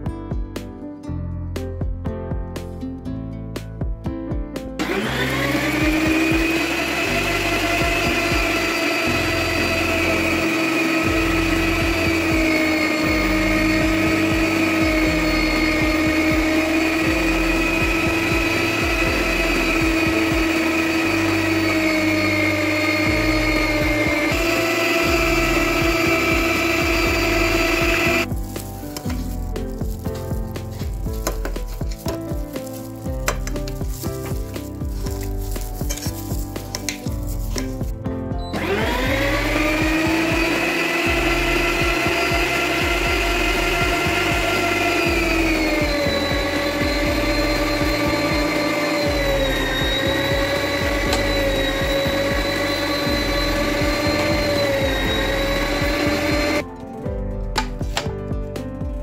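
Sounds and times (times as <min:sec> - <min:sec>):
electric meat grinder motor: 0:04.8 - 0:37.8, 0:38.5 - 0:56.6.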